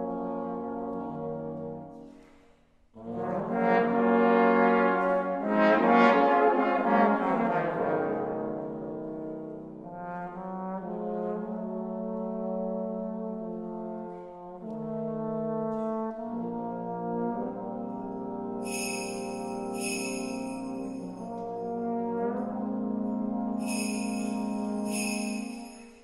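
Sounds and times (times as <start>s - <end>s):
trombone quartet playing chords: 0.0s - 2.0s, 3.0s - 26.0s.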